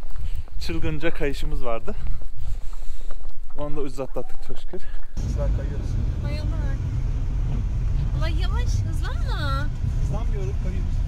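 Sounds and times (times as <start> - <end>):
car cabin rumble: 5.2 - 11.0.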